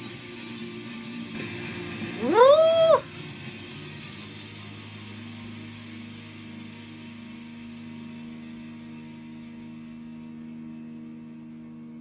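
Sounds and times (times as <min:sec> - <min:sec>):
rock music with guitar: 0:00.0 - 0:09.9
drawn-out meow-like cry: 0:02.2 - 0:03.0.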